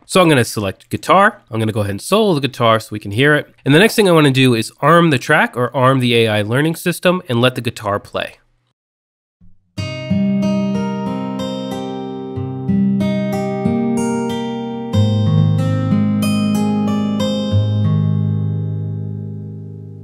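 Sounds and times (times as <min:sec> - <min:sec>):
picked acoustic guitar chords: 0:09.8 - 0:20.0.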